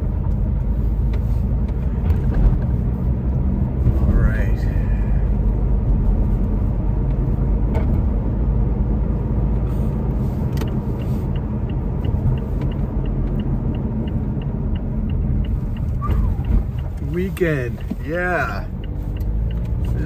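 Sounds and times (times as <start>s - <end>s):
car engine and tyre rumble: 0.0s - 20.0s
light evenly spaced ticks: 10.5s - 20.0s.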